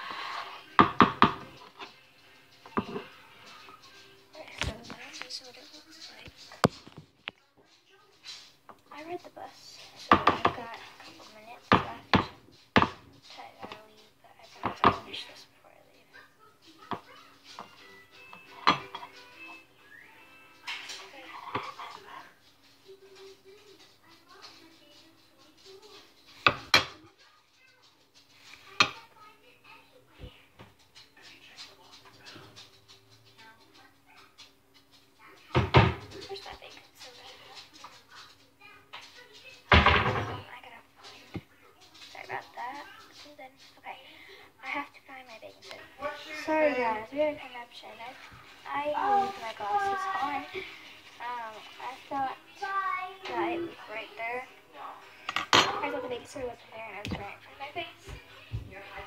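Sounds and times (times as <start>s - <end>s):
hard object knocking on mixing bowl: 0.8s - 1.5s, 10.1s - 10.6s, 11.7s - 13.1s, 14.6s - 15.0s.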